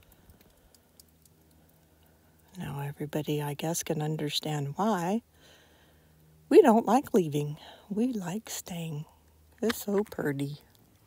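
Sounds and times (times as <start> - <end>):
soft ticks: 0.0 - 2.2.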